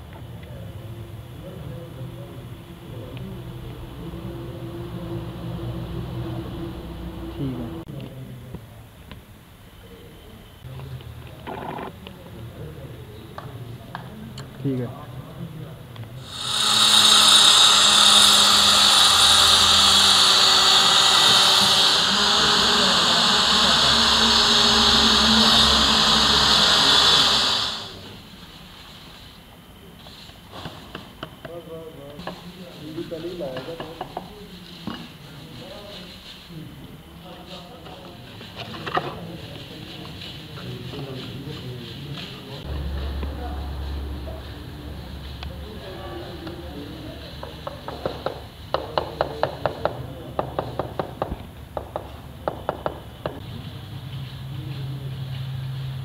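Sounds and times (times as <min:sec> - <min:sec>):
electric tile cutter whining: 0:16.2 - 0:28.0.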